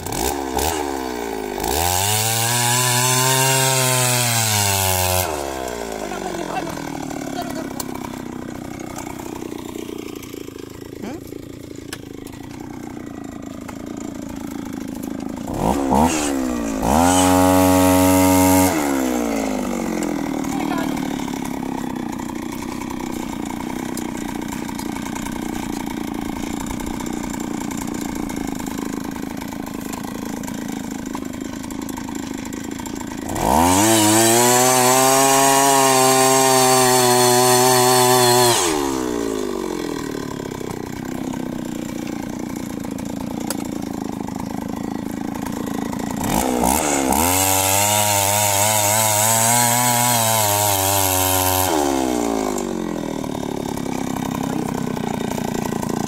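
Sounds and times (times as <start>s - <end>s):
earth auger engine revving: 0.0s - 56.0s.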